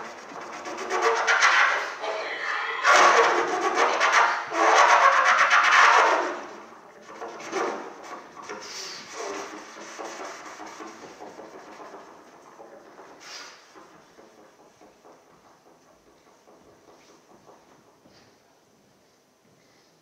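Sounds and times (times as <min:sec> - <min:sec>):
air sputtering through trumpet: 0:00.0 - 0:16.0.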